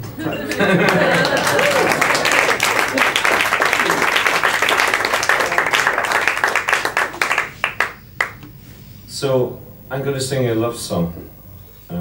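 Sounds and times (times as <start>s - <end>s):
audience applauding: 0.4s - 8.4s.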